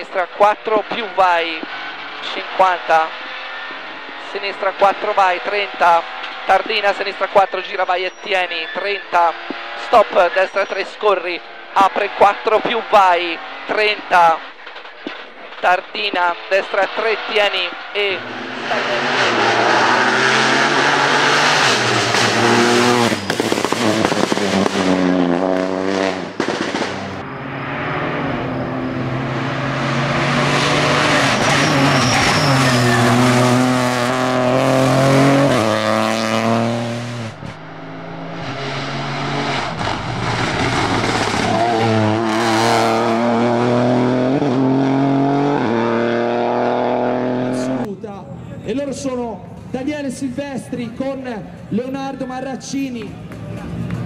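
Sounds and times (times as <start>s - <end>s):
rally car engine revving: 0.0s - 47.9s.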